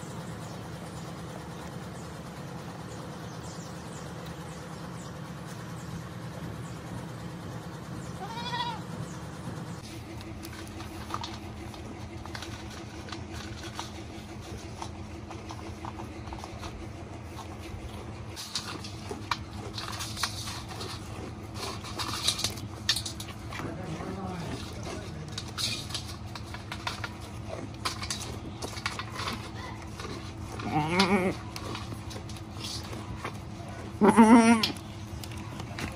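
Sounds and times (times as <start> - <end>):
steady low hum: 0.0 - 35.9
goat bleat: 8.2 - 8.9, 30.6 - 31.6, 34.0 - 34.8
goat crunching food: 9.8 - 35.9.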